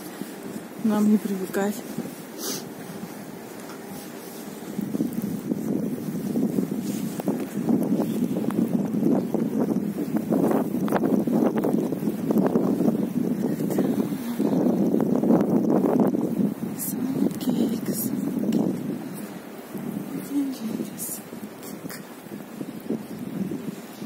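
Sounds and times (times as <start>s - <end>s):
wind buffeting microphone: 0.0s - 24.0s.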